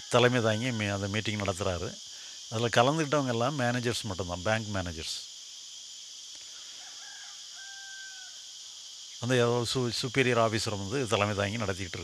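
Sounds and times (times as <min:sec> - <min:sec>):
distant rooster crow: 0:00.0 - 0:01.3, 0:06.5 - 0:08.6
crickets chirring: 0:00.0 - 0:12.0.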